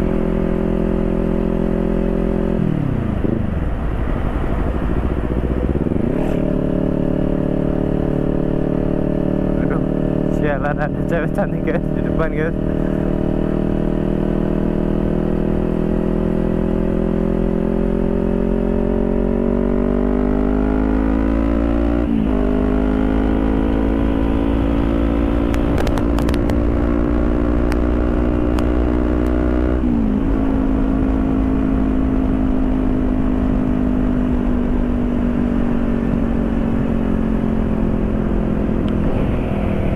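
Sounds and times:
low wind rumble: 0.0 - 39.9
motorcycle engine accelerating: 0.0 - 39.9.

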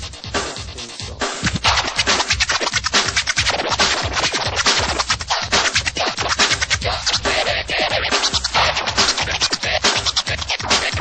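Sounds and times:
driving electronic beat: 0.0 - 11.0
turntable scratching: 0.0 - 11.0.

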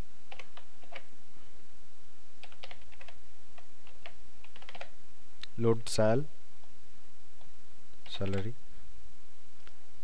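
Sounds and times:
steady background hiss: 0.0 - 10.0
keyboard typing: 0.3 - 1.1, 2.4 - 5.0.

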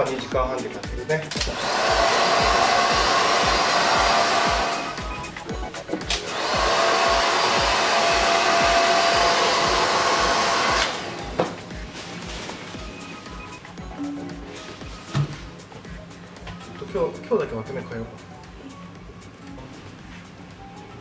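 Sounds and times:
background music with steady beat: 0.0 - 21.0
hair dryer blowing: 1.4 - 5.4, 6.1 - 12.6.

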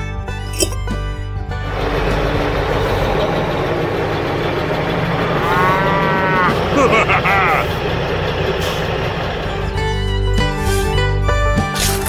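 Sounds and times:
truck engine: 0.5 - 12.0
cow mooing: 5.3 - 7.7.

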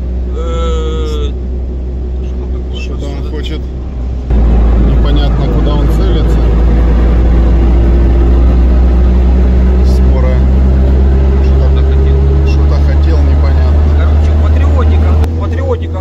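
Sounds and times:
engine and tyre drone: 0.0 - 16.0.

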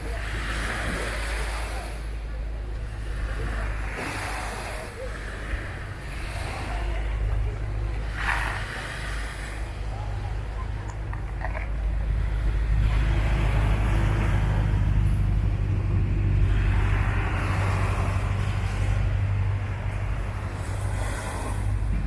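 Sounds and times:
small waves washing onto sand: 0.0 - 22.0
wind rumble on microphone: 0.0 - 22.0.

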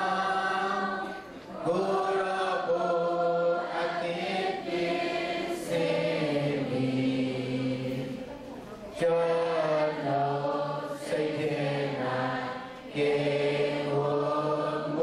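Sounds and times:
man singing through loudspeakers: 9.0 - 12.1.

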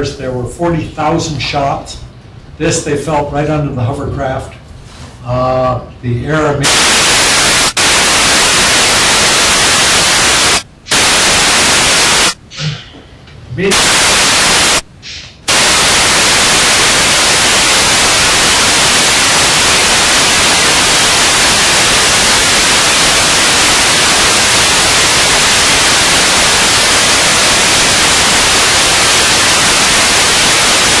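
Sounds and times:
electronic static hiss: 6.6 - 12.6, 13.6 - 31.0.

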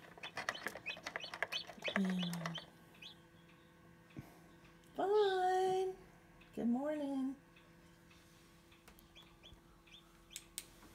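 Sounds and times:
chick peeping: 0.0 - 3.2, 9.0 - 10.5
incubator humming: 0.0 - 10.9.

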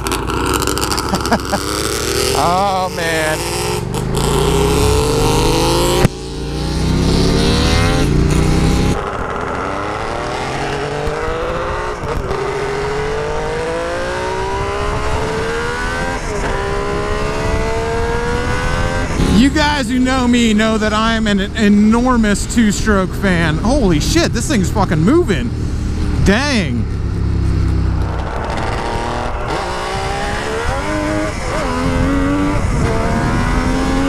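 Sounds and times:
motorcycle engine revving through gears: 0.0 - 19.6, 26.8 - 34.0
road and wind noise: 0.0 - 34.0.

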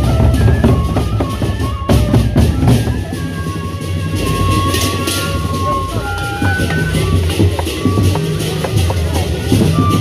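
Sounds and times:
barrel drums beating: 0.0 - 10.0
hand cymbals clashing: 1.4 - 10.0.

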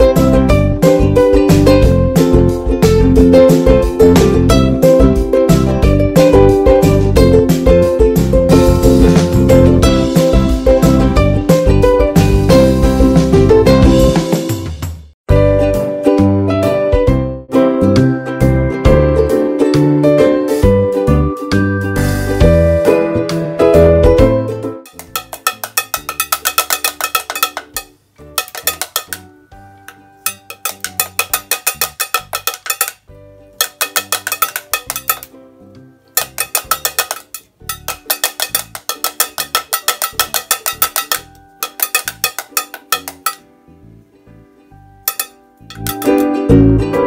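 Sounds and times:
pellet drum clacking: 24.9 - 29.2, 30.3 - 33.0, 33.6 - 35.3, 36.2 - 43.4, 45.1 - 46.2.

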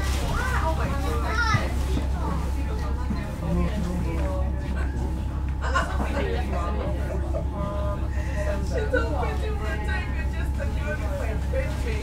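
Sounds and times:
children chattering and calling out: 0.0 - 7.6
train rumbling: 0.0 - 12.0.

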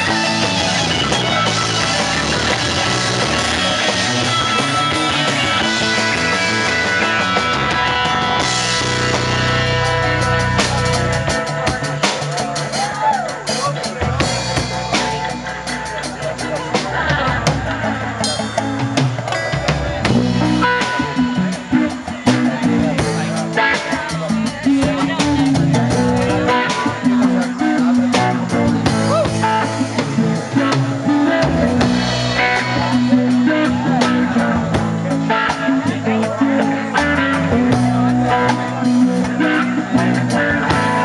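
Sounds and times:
bass: 0.0 - 41.0
drum kit: 0.0 - 41.0
electric guitar: 0.0 - 41.0
live rock band instrumental: 0.0 - 41.0.

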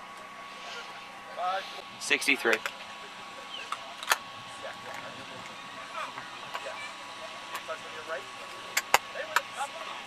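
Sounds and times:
faint distant voices: 0.0 - 10.0
faint steady hum: 0.0 - 10.0.

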